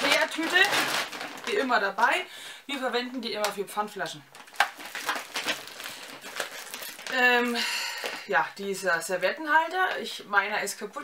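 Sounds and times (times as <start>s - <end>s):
plastic bag rustling: 0.0s - 2.2s, 4.3s - 8.4s.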